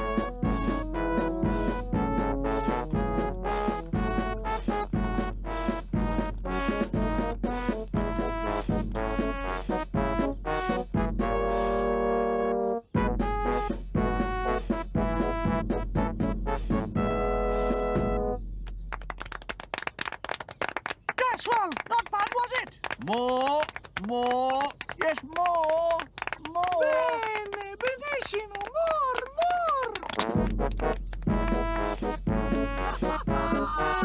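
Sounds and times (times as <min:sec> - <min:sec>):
bass drum beat: 0:00.0 - 0:11.5, 0:12.9 - 0:18.9, 0:30.3 - 0:34.0
brass band playing: 0:00.0 - 0:18.4, 0:30.2 - 0:34.0
crowd clapping: 0:05.6 - 0:09.4, 0:18.6 - 0:34.0.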